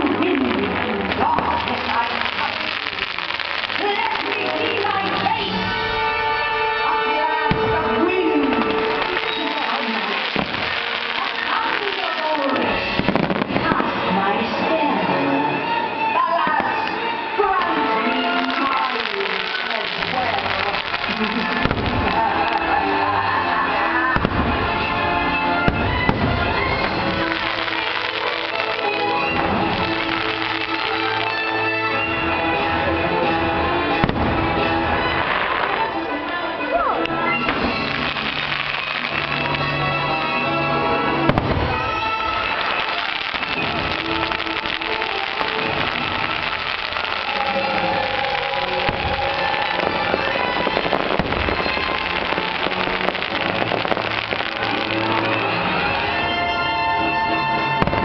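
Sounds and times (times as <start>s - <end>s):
show music: 0.0s - 58.0s
fireworks thuds and bangs: 7.4s - 14.1s, 18.5s - 22.7s, 24.2s - 25.0s, 25.6s - 31.6s, 33.9s - 35.9s, 41.2s - 55.6s, 57.8s - 58.0s
firework bang: 13.0s - 13.8s, 41.3s - 41.9s, 57.8s - 58.0s.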